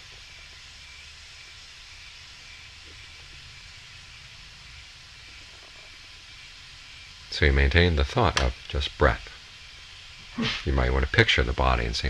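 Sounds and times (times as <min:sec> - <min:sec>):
faint hiss: 0:00.0 - 0:12.0.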